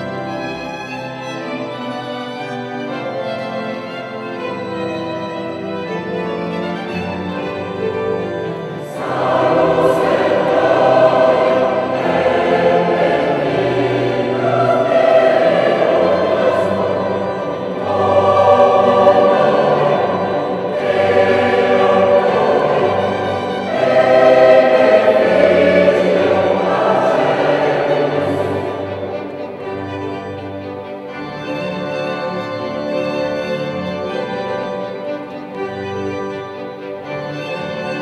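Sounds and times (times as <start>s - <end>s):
choir singing: 0.0s - 38.0s
string orchestra: 0.0s - 38.0s.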